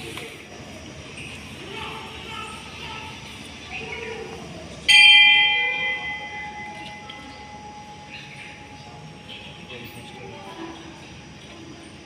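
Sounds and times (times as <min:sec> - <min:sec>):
murmur of voices: 0:00.0 - 0:12.0
temple bell ringing: 0:04.8 - 0:12.0.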